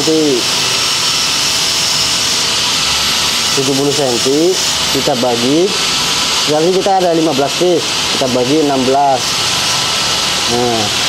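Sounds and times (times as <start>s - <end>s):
mechanical whirring with hiss: 0.0s - 11.0s.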